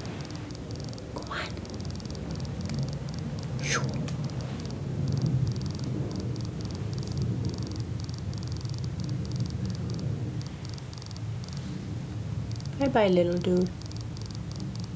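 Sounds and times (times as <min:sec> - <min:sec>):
steady low hum: 0:00.0 - 0:14.9
high-pitched chirping bursts: 0:00.1 - 0:11.7, 0:13.7 - 0:14.9.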